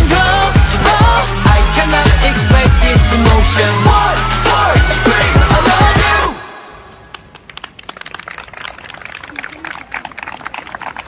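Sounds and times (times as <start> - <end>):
people clapping: 7.1 - 11.0
people talking: 9.2 - 11.0.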